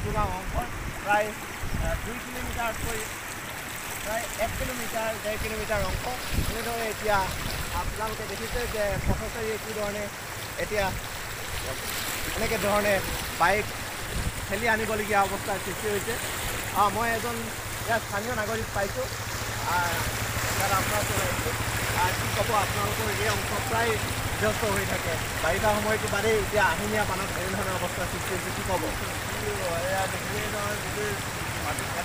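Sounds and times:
people talking: 0:00.0 - 0:03.1, 0:04.0 - 0:11.0, 0:11.6 - 0:13.7, 0:14.5 - 0:32.0
floodwater rushing: 0:00.0 - 0:32.0.

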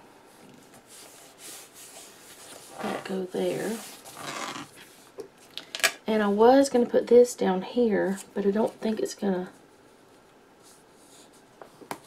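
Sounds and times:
soft paper rustling: 0:00.3 - 0:05.5, 0:08.0 - 0:12.0.

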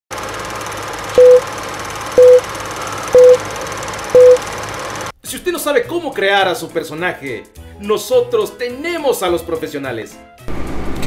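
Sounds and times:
film projector whirring: 0:00.1 - 0:05.1
short high beeps: 0:01.2 - 0:01.4, 0:02.2 - 0:02.4, 0:03.1 - 0:03.4, 0:04.2 - 0:04.4.

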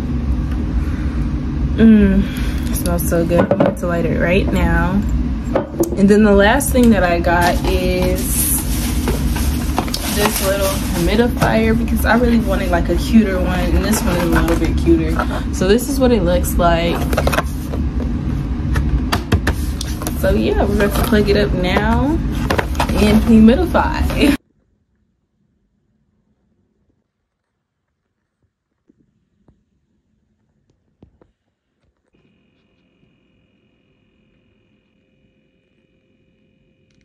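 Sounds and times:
steady low rumble: 0:00.0 - 0:24.4
humidifier whine and hum: 0:00.0 - 0:37.0
cardboard box handled: 0:07.4 - 0:12.6.

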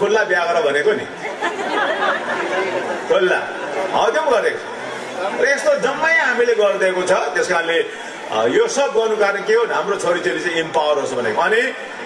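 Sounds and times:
man talking over loudspeakers: 0:00.0 - 0:01.2, 0:03.1 - 0:12.0
voices chattering: 0:00.0 - 0:12.0.

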